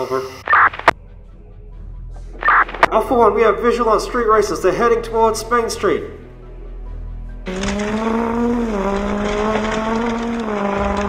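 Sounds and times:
background music: 0.0 - 11.0
race car engine revving: 7.4 - 11.0.

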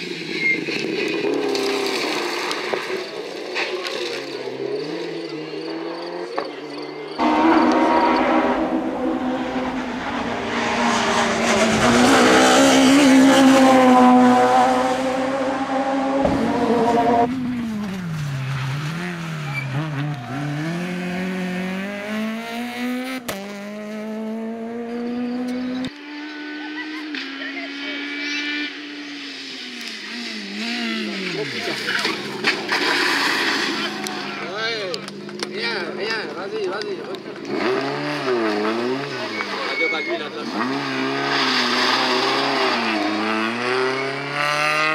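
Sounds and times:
rally car engines revving: 0.0 - 44.9
tyre squeal: 0.2 - 0.9, 39.2 - 40.4.

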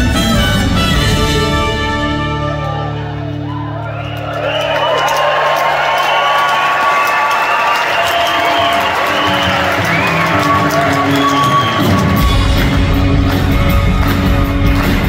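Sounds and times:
live band playing: 0.0 - 4.4, 8.5 - 15.0
audience cheering and whooping: 2.3 - 15.0.

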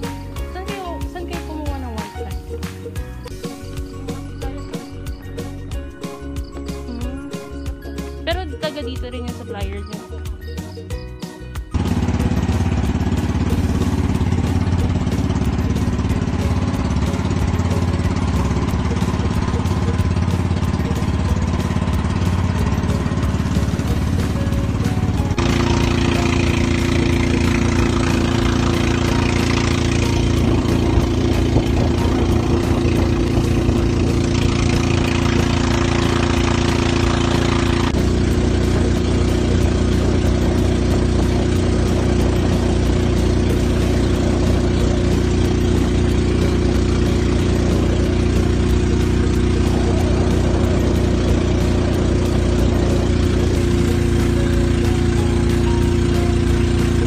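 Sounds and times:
motorboat engine droning: 0.0 - 10.6, 11.7 - 57.0
rushing wind and water: 28.9 - 54.8.

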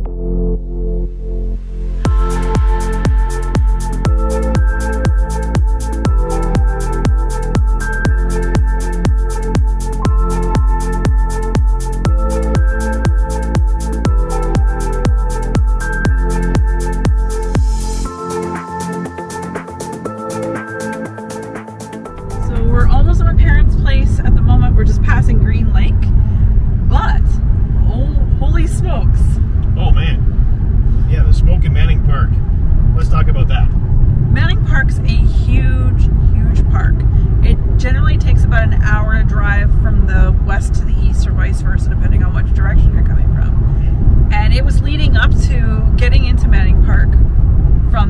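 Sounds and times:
road noise rumble in car: 0.0 - 20.3, 21.3 - 48.0
woman talking: 22.4 - 26.1, 26.9 - 29.4, 34.3 - 43.5, 44.3 - 47.2.

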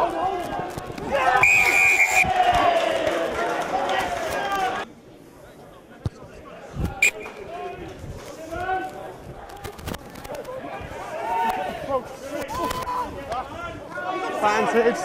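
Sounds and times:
distant talk and shouts: 0.0 - 15.0.

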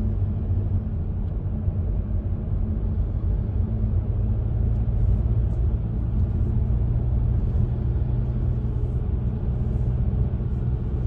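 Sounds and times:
car road rumble: 0.0 - 11.0
constant low hum: 0.0 - 11.0.

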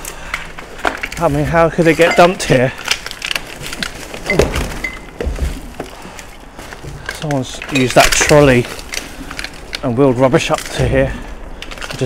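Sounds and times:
debris crunching under bicycle tyres: 0.0 - 12.0
bike jolting thumps: 0.7 - 9.6.

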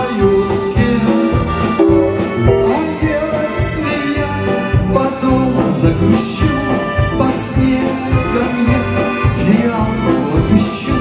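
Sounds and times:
accordion: 0.0 - 11.0
live band playing: 0.0 - 11.0.

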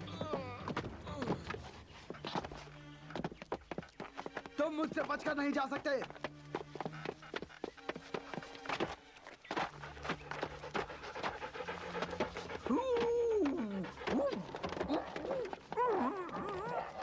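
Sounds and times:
cartoon dog panting: 6.5 - 8.9, 9.5 - 15.8.

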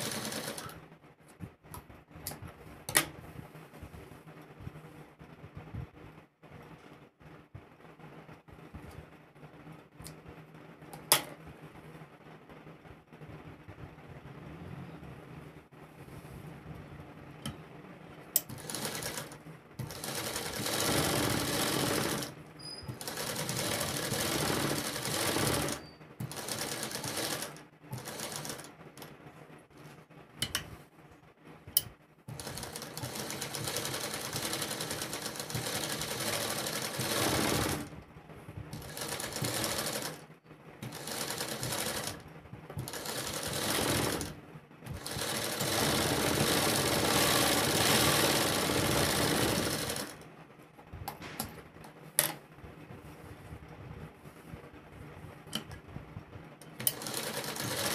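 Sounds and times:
sewing machine stitching: 0.0 - 0.8, 18.4 - 29.1, 32.3 - 38.0, 38.7 - 40.2, 40.8 - 42.2, 42.8 - 50.2, 56.7 - 57.9.

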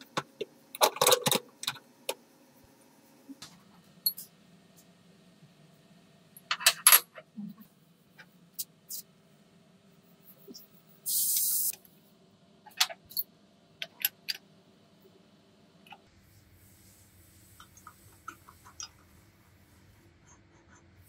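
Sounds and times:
short hiss: 11.1 - 11.7.

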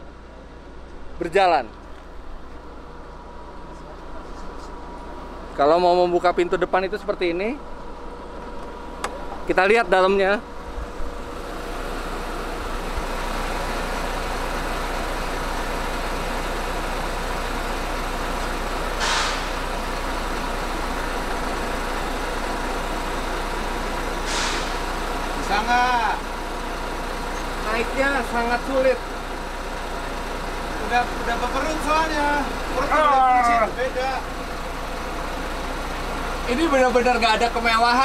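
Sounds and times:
diesel engine idling: 0.0 - 38.0
air brake hisses: 19.0 - 19.6, 24.2 - 25.0.

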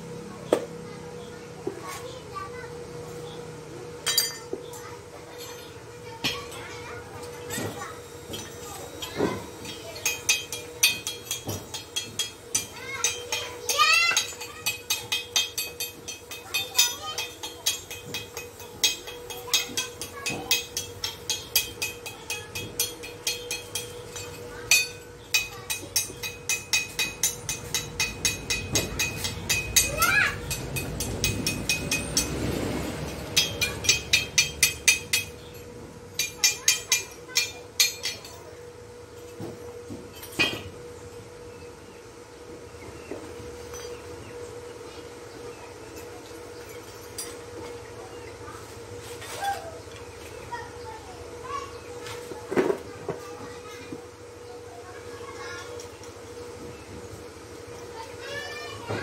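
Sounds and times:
chipping hammer tapping steel: 8.3 - 38.5.

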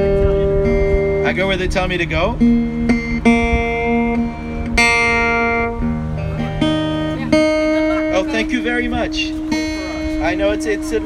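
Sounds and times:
acoustic guitar strings plucked: 0.0 - 11.0.

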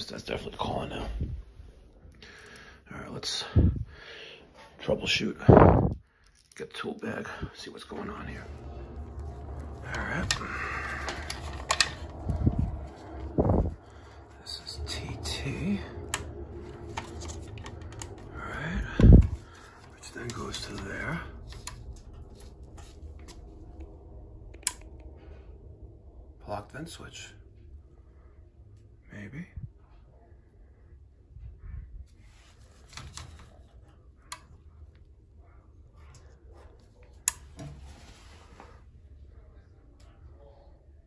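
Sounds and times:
faint steady hum: 0.0 - 41.0
soft rustling and handling: 4.5 - 24.2, 32.0 - 39.5.

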